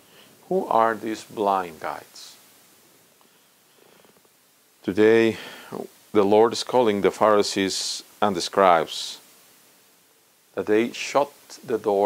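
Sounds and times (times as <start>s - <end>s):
man's voice: 0.5s - 2.4s.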